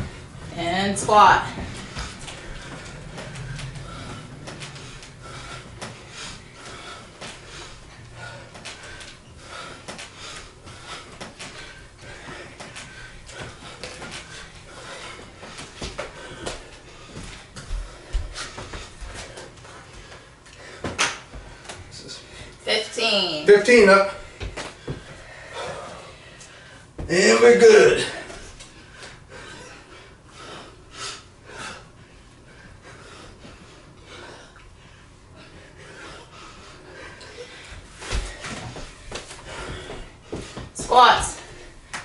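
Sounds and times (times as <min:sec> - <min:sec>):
people breathing hard: 0:01.1 - 0:22.6, 0:24.2 - 0:27.0, 0:28.1 - 0:42.0
hands slapping floor: 0:20.8 - 0:21.8, 0:24.4 - 0:25.2.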